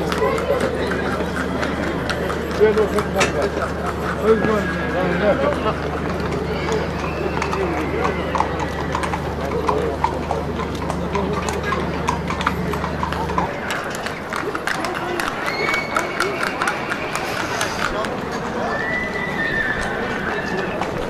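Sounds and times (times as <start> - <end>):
horse hooves clip-clopping: 0.0 - 21.0
people's voices: 0.0 - 21.0.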